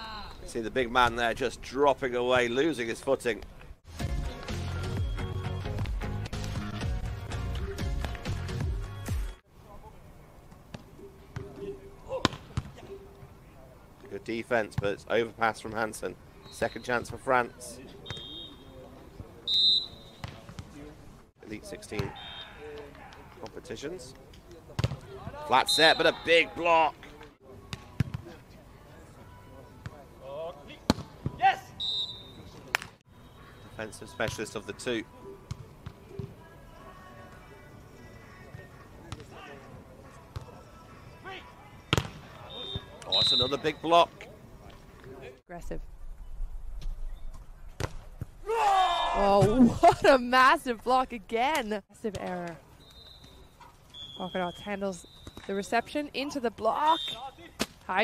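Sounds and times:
referee's whistle blasts: 0:04.8 - 0:05.8, 0:18.0 - 0:18.8, 0:19.5 - 0:20.4, 0:22.1 - 0:22.7, 0:25.5 - 0:26.5, 0:31.6 - 0:32.6, 0:42.4 - 0:43.9, 0:52.8 - 0:56.0, 0:56.7 - 0:57.4.

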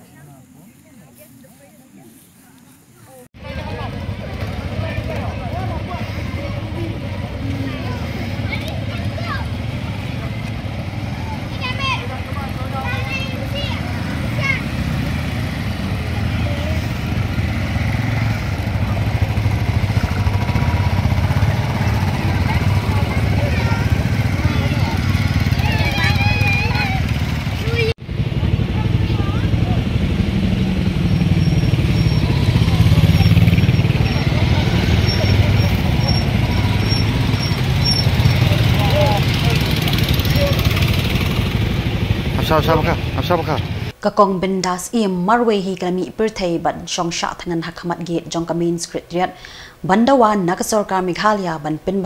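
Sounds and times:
crowd voices: 0:00.0 - 0:43.9
motorcycle engines running: 0:00.0 - 0:44.0.

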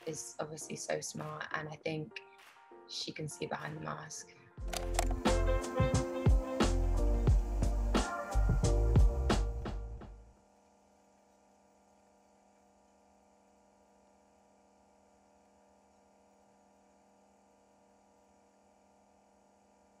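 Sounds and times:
outro music: 0:04.6 - 0:10.2.

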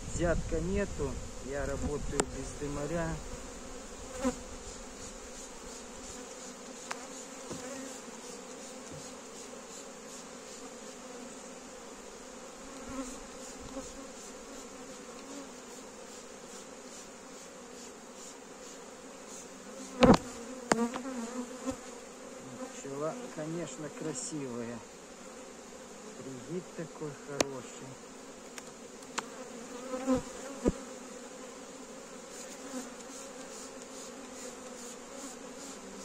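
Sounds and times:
honeybees humming: 0:00.7 - 0:36.0.

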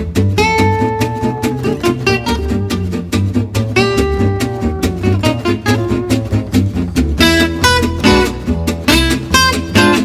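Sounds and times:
bass line: 0:00.0 - 0:10.0
lead guitar picking melody: 0:00.0 - 0:10.0
strummed guitar rhythm: 0:00.0 - 0:10.0.

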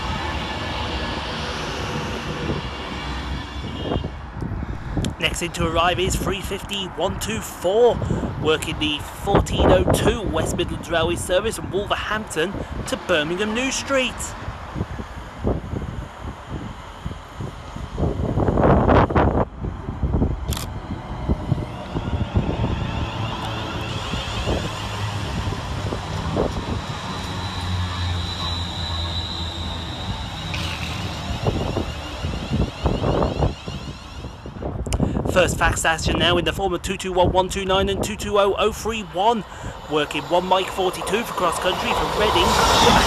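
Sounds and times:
high whine of train motors: 0:00.0 - 0:43.0
loud rush of passing train: 0:00.0 - 0:43.0
train wheels rolling on rails: 0:14.5 - 0:35.3, 0:38.0 - 0:43.0.

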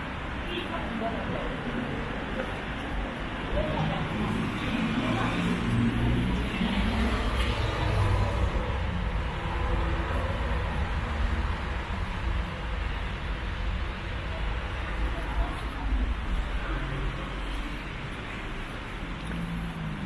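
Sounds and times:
road traffic rumble: 0:00.0 - 0:20.0
vehicle engine: 0:02.6 - 0:20.0.

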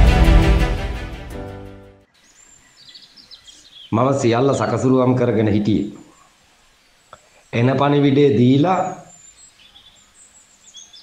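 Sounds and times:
quiet background hiss: 0:02.0 - 0:11.0
high bird chirps: 0:02.2 - 0:04.0, 0:08.8 - 0:11.0.

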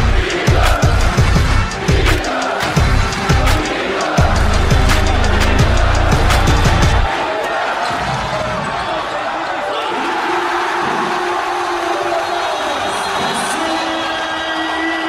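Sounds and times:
arena crowd noise: 0:00.0 - 0:15.0.

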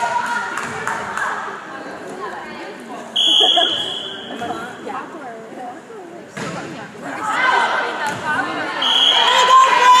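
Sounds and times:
referee's whistle blast: 0:08.8 - 0:09.4.

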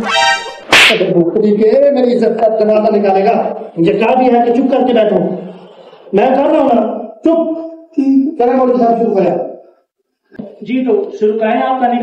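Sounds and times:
brief high-pitched tone: 0:00.0 - 0:00.7
sharp whip-like slap: 0:00.6 - 0:01.1.

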